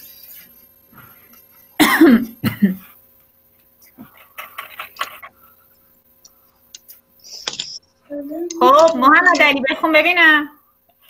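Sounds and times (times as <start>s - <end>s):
person coughing: 1.8s - 2.9s.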